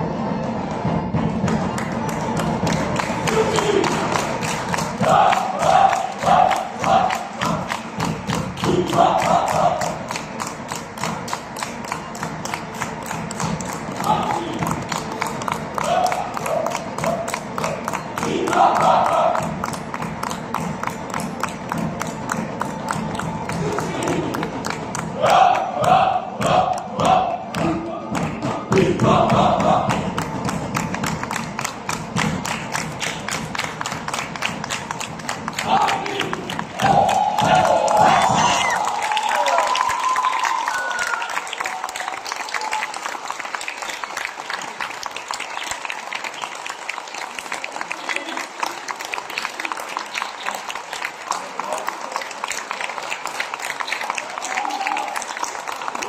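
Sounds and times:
folk dance music: 0.0s - 40.2s
audience applauding: 0.7s - 28.4s, 29.0s - 56.0s
long held whoop: 36.8s - 41.3s, 54.3s - 55.2s.

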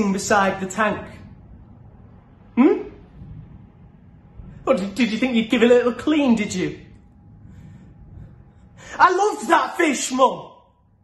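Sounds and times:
low room hum: 0.0s - 11.0s
person speaking: 4.6s - 10.7s
faint breath: 7.0s - 9.0s.

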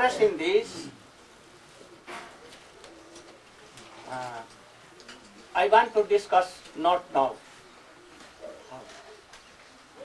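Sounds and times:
faint bird calling: 7.6s - 10.0s.

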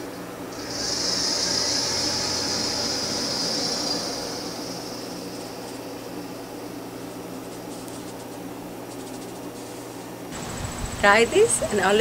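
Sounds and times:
high-pitched hiss: 0.0s - 9.6s
low steady hum: 0.0s - 12.0s.

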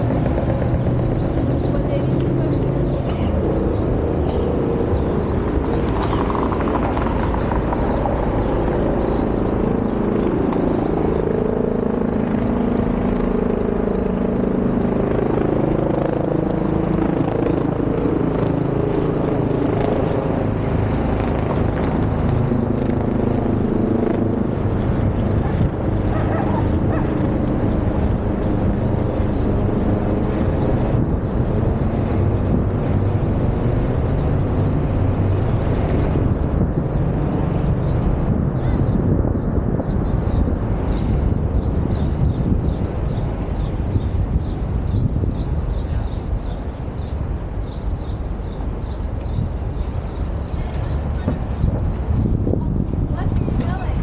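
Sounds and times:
street traffic rumble: 0.0s - 54.0s.

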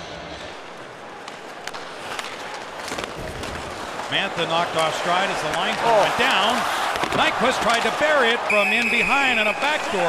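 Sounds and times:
arena background noise: 0.0s - 10.0s
sticks and puck clacking: 0.3s - 10.0s
skate blades scraping ice: 1.2s - 9.9s.

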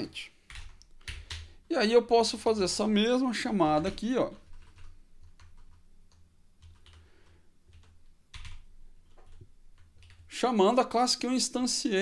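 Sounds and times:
computer keyboard keystrokes: 0.5s - 1.5s, 3.8s - 10.2s.

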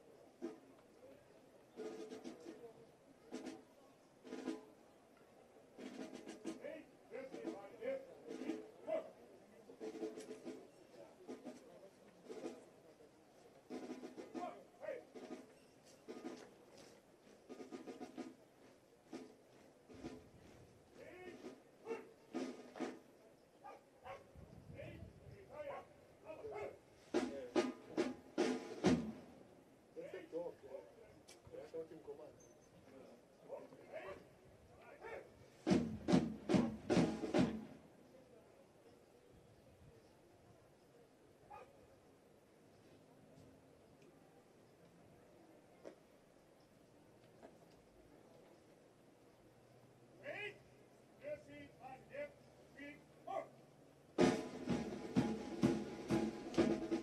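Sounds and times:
distant brass band with drums: 0.0s - 1.0s, 1.6s - 30.6s, 32.9s - 38.0s, 50.2s - 57.0s
people talking nearby: 0.0s - 36.0s, 37.3s - 53.6s
sharp drum strokes: 54.2s - 57.0s.

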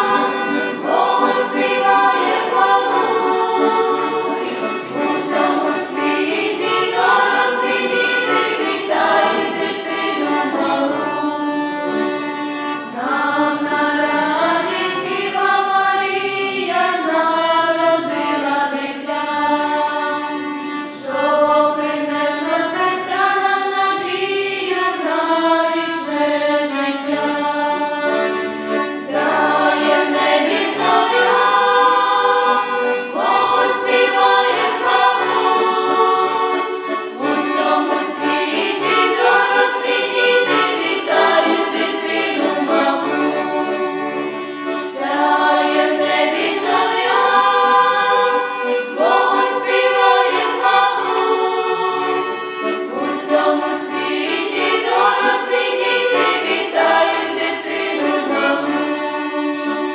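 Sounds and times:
choir of women singing carol: 0.0s - 59.9s
piano accordion: 0.0s - 59.9s.

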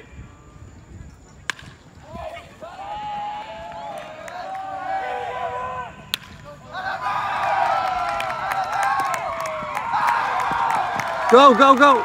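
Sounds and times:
bat hitting baseball: 1.5s - 1.8s, 6.0s - 6.6s.

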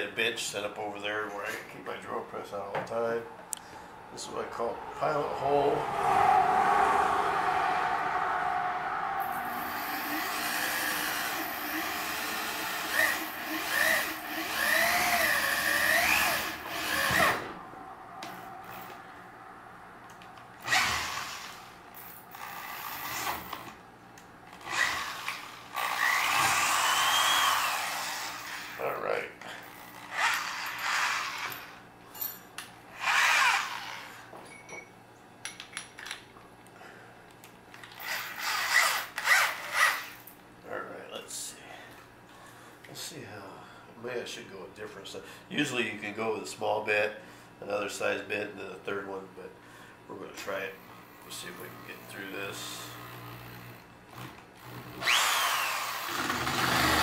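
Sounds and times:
cordless drill boring into metal: 9.8s - 17.4s, 20.6s - 21.6s, 24.6s - 28.8s, 30.0s - 31.7s, 37.9s - 40.2s, 54.2s - 57.0s.

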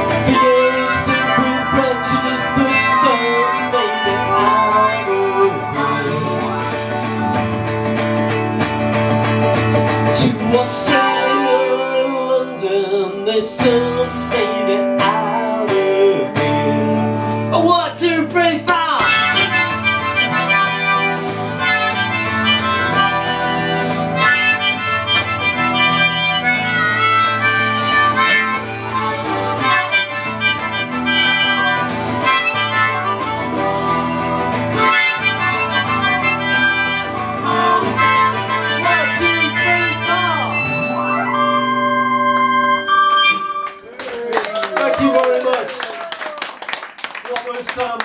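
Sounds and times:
harmonica solo: 0.0s - 17.7s, 18.8s - 44.0s
electric guitar: 0.0s - 45.3s
audience applause: 43.6s - 48.0s.

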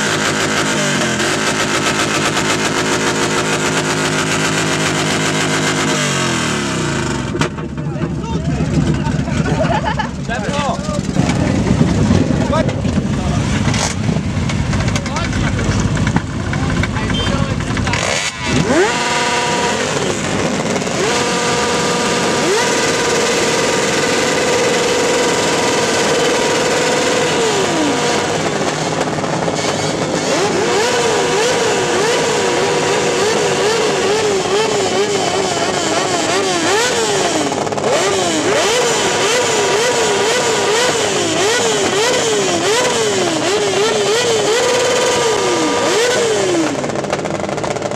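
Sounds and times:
motorcycle engine revving: 0.0s - 47.9s.

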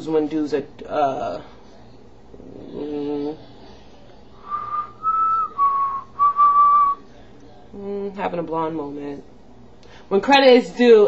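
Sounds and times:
woman whistling: 4.4s - 7.0s.

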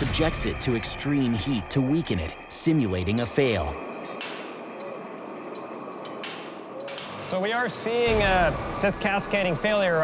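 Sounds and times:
steady machine noise: 0.0s - 10.0s
steel wires snapping with metallic pings: 3.9s - 8.2s.

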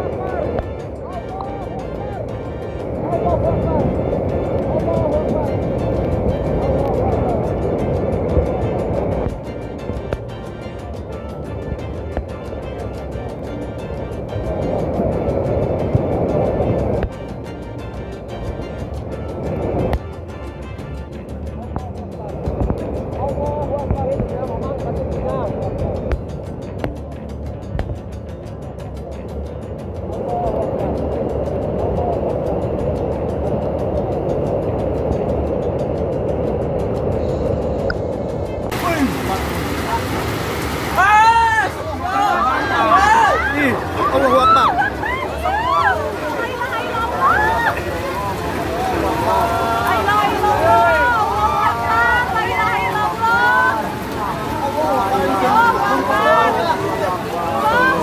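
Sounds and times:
background music: 0.0s - 58.0s
flash flood water rushing: 0.0s - 58.0s
indistinct voices: 36.8s - 58.0s.

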